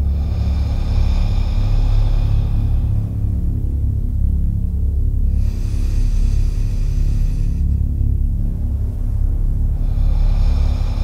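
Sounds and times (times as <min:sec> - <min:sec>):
deep rumbling drone: 0:00.0 - 0:11.0.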